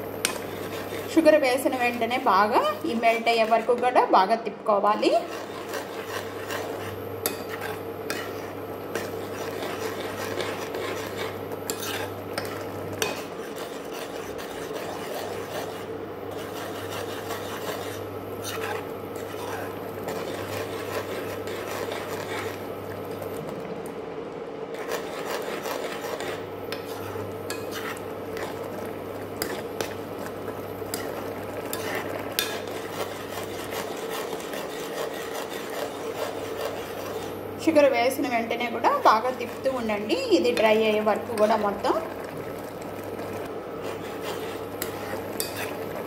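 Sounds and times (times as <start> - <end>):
steady low hum: 0.0 - 46.0
metal spoon scraping a pan: 0.2 - 4.0, 5.1 - 22.6, 24.7 - 41.9, 43.8 - 46.0.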